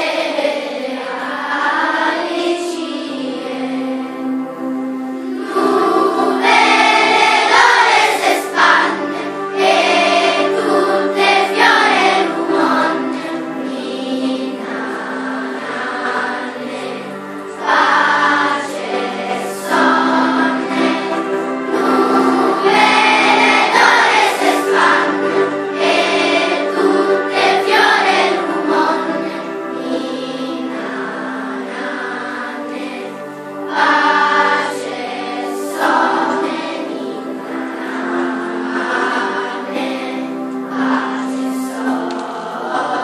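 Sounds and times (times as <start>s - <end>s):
children's choir singing: 0.0s - 43.0s.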